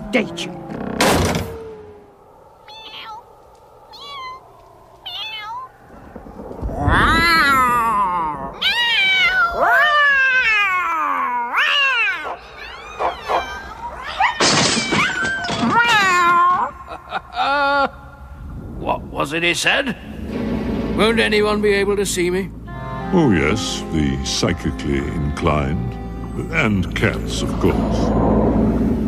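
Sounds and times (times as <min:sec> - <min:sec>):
cat yowling: 0:02.6 - 0:05.8, 0:06.7 - 0:16.7.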